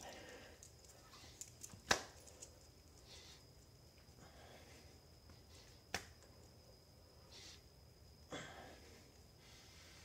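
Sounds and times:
hands slapping tile floor: 1.4s - 2.5s, 5.9s - 6.3s.

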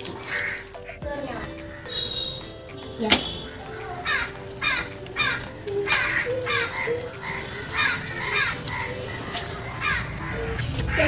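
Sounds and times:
crows cawing: 0.0s - 11.0s.

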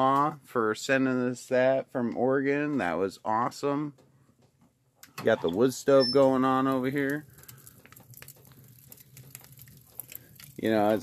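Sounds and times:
wood fire crackling: 5.2s - 11.0s.

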